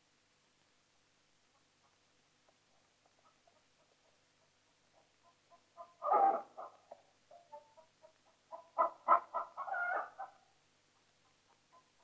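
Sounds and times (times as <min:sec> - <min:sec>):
chickens clucking: 0:02.7 - 0:12.0.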